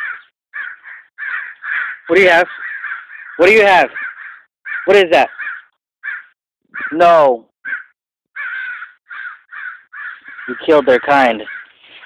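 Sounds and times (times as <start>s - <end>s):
crows cawing: 0.0s - 7.0s, 7.6s - 12.0s.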